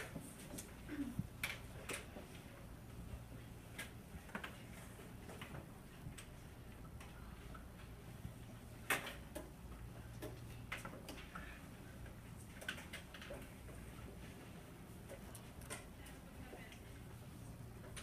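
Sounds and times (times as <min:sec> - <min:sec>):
pencils and paper clicks and taps: 0:00.0 - 0:18.0.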